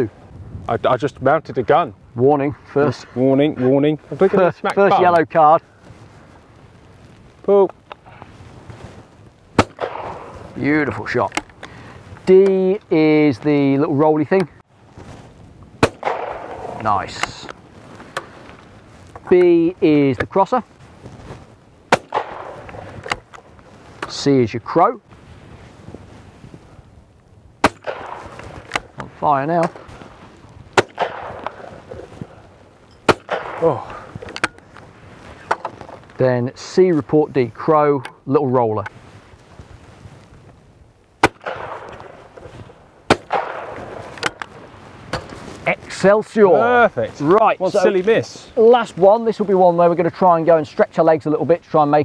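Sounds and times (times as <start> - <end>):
shotgun shot with echo: 9.6 - 10.4, 15.8 - 16.8, 21.9 - 23.2, 27.6 - 28.4, 30.8 - 31.7, 33.1 - 33.8, 41.2 - 42.0, 43.1 - 44.0.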